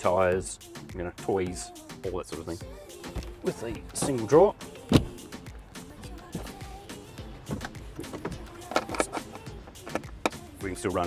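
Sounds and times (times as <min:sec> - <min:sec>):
background music: 0:00.0 - 0:11.0
seat latch clicks and knocks: 0:04.8 - 0:05.3, 0:07.4 - 0:10.5.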